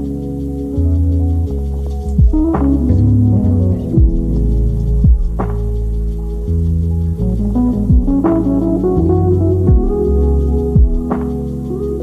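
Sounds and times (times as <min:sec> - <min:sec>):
lo-fi hip-hop instrumental: 0:00.0 - 0:12.0
kick drum: 0:02.2 - 0:02.8, 0:04.0 - 0:04.4, 0:05.0 - 0:05.5, 0:07.9 - 0:08.4, 0:09.7 - 0:10.1, 0:10.8 - 0:11.3.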